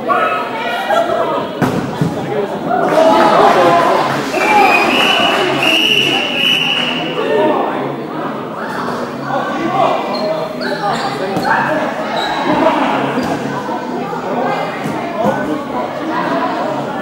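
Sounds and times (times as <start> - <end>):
players shouting in echoing hall: 0.0 - 17.0
dodgeballs thudding: 1.6 - 2.4.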